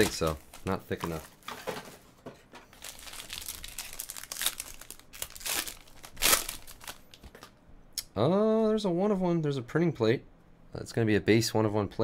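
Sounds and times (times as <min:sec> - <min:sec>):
foil pack crinkling and tearing: 0:00.0 - 0:01.6, 0:02.7 - 0:07.4.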